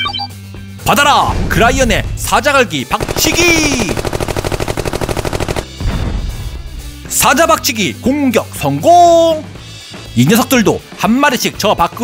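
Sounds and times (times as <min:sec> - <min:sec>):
background music: 0:00.0 - 0:12.0
deep boom: 0:05.8 - 0:06.8.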